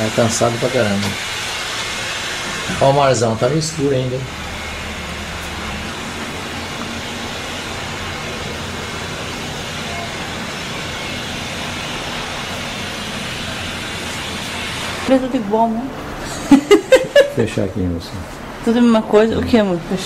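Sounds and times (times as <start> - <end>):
steady outdoor hiss: 0.0 - 20.0.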